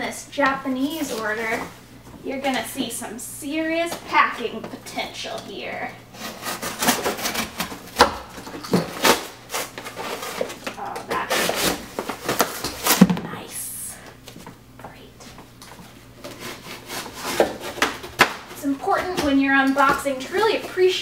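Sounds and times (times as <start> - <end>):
cardboard box cut and torn: 6.2 - 8.1.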